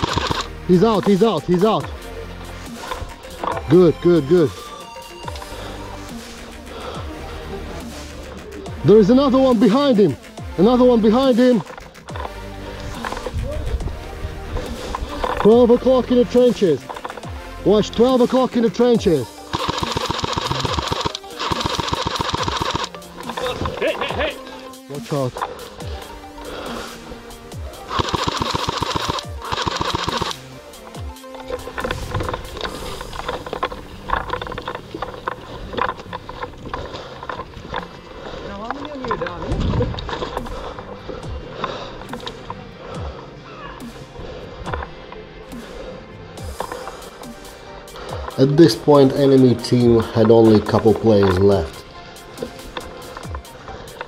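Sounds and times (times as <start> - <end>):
airsoft rifle full-auto fire: 0.0 - 0.5, 19.5 - 22.9, 27.9 - 30.4
background music: 0.0 - 54.0.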